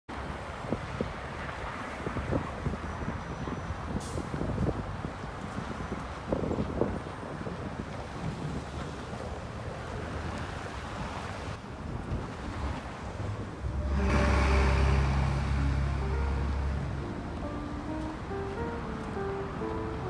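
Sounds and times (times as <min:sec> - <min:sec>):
passing car traffic: 0:00.1 - 0:20.0
wind buffeting microphone: 0:00.5 - 0:20.0
background music with deep bass: 0:13.6 - 0:20.0.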